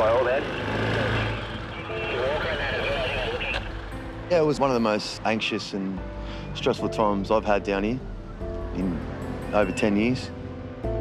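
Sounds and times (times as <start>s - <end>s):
quad bike engine running: 0.0s - 3.4s.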